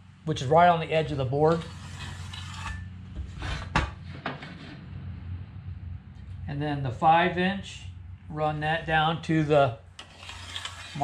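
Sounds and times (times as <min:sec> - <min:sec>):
metal level scraping on wood: 0:01.2 - 0:04.9, 0:10.0 - 0:11.0.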